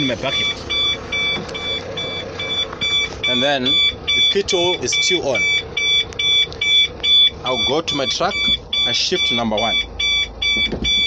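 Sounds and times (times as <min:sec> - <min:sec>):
warning buzzer beeping rapidly: 0:00.0 - 0:11.0.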